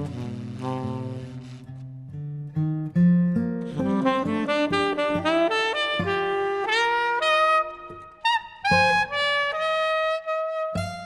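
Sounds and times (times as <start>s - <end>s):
saxophone playing slow melody: 0.0s - 2.0s, 3.7s - 11.0s
acoustic guitar accompaniment: 0.0s - 11.0s.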